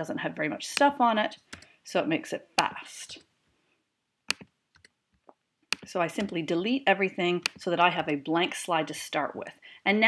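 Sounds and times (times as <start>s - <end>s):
computer input clicks: 4.3s - 4.9s, 5.7s - 6.4s, 7.4s - 7.6s.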